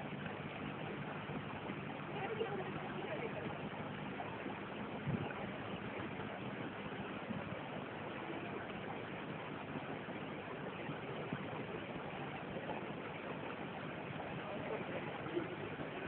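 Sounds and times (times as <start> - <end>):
low steady hum: 0.0 - 16.0
water churning: 0.0 - 16.0.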